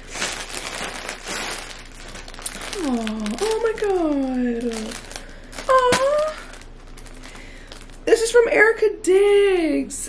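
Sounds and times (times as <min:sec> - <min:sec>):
plastic wrapping crinkling: 0:00.0 - 0:08.6.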